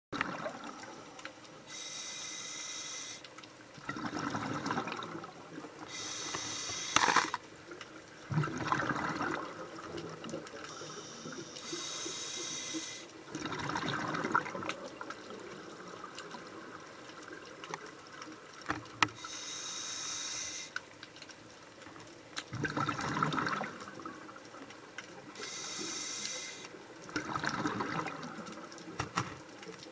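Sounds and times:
exhaled air bubbling: 0.1s - 1.8s, 3.8s - 18.6s, 22.4s - 29.1s
regulator inhale hiss: 0.8s - 3.3s, 5.9s - 7.4s, 10.7s - 13.2s, 19.2s - 20.8s, 25.4s - 26.8s.

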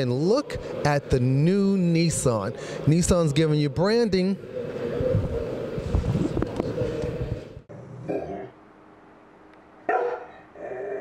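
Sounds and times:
dog barking: 9.9s - 11.0s.

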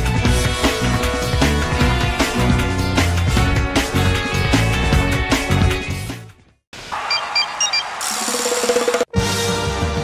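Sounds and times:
short high electronic beeps: 7.0s - 8.3s.

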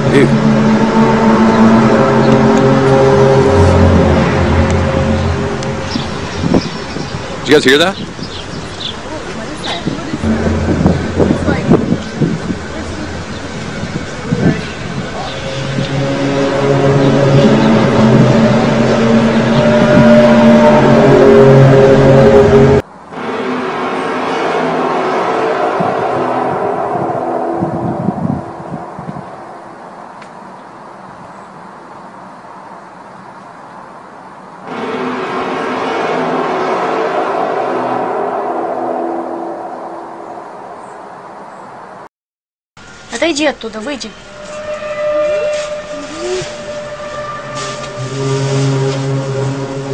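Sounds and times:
low trumpet-like drones: 0.0s - 30.2s, 34.6s - 42.0s, 42.8s - 49.9s.

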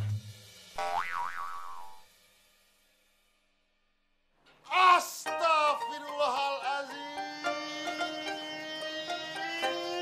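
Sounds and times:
cartoon boing twang: 0.8s - 2.0s.

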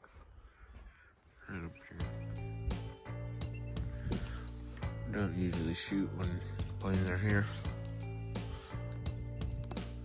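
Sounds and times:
crow cawing: 0.1s - 2.4s
background music with steady beat: 1.5s - 10.0s.

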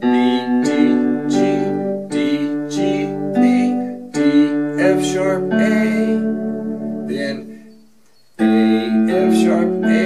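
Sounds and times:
electronic keyboard piano arpeggio: 0.0s - 10.0s.

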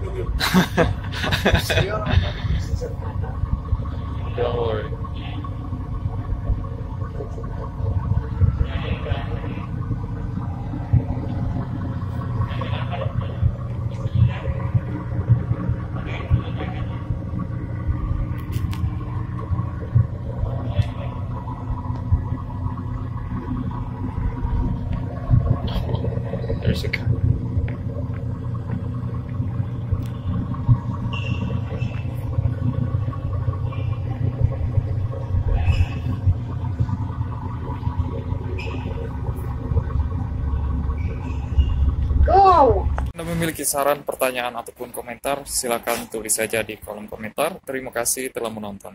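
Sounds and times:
engine low rumble: 0.0s - 48.9s.

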